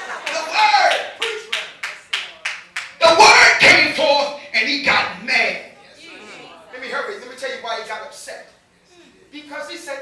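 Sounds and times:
hands clapping in rhythm: 0.0s - 3.0s.

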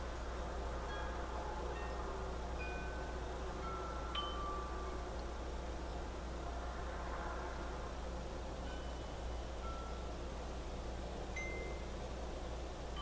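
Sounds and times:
steady low hum: 0.0s - 13.0s
chimes ringing: 2.6s - 5.0s, 8.6s - 10.2s, 11.4s - 12.0s.

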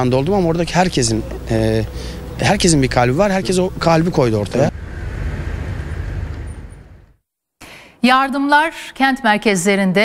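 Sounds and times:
low rumbling outdoor noise: 0.0s - 7.2s.

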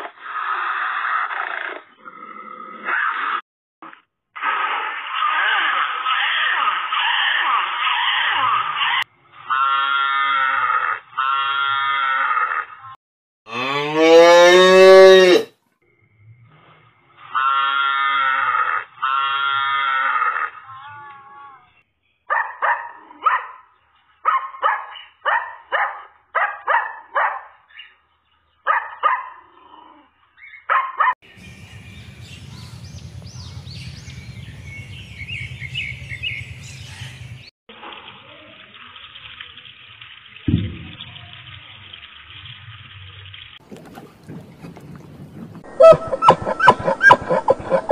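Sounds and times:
seals bellowing: 43.7s - 47.9s
puppy yelping: 45.7s - 47.9s.

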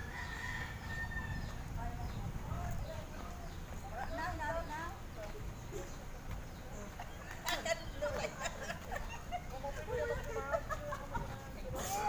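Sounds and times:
rooster crowing: 0.0s - 1.5s.

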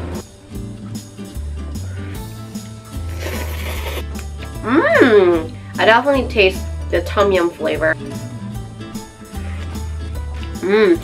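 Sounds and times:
background music: 0.0s - 11.0s
noodles being slurped: 3.1s - 4.1s.

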